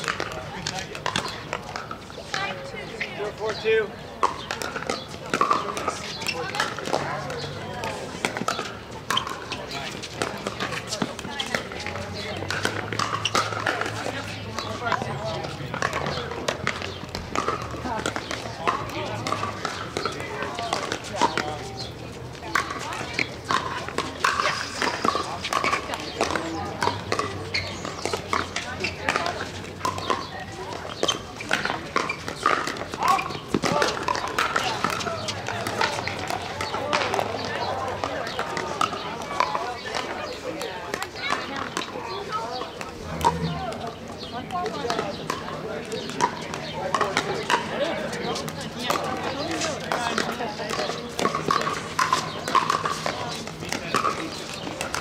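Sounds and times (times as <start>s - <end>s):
paddles hitting balls hollow pops: 0.0s - 2.5s, 4.2s - 55.0s
background chatter: 0.0s - 55.0s.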